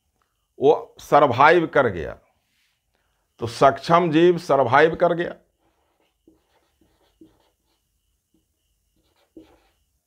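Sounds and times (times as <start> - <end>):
marker pen scratching on whiteboard: 5.5 - 10.0.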